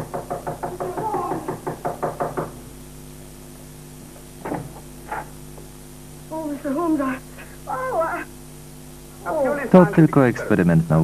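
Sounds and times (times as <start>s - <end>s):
rapid knocking on a door: 0.0s - 2.6s.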